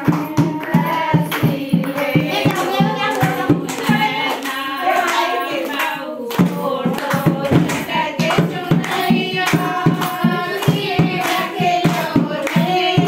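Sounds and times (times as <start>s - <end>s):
rhythmic hand clapping: 0.0s - 13.0s
women singing: 0.0s - 13.0s.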